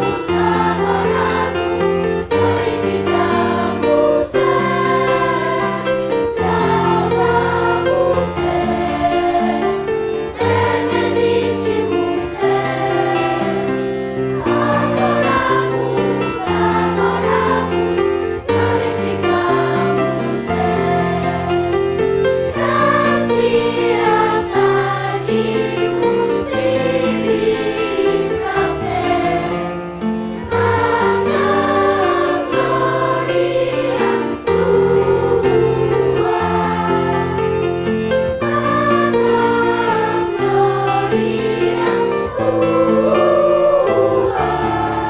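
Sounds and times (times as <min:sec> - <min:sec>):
children's choir singing: 0:00.0 - 0:45.0.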